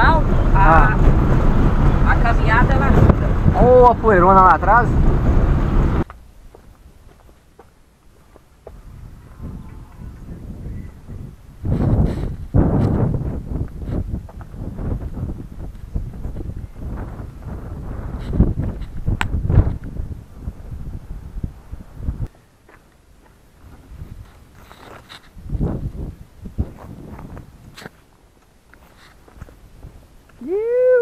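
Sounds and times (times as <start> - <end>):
wind buffeting microphone: 0.0 - 7.0, 8.6 - 22.4, 23.6 - 28.0, 29.3 - 31.0
car driving on dirt road: 0.0 - 7.4
rustling and scuffs: 11.6 - 13.0, 22.7 - 26.0, 26.6 - 30.1.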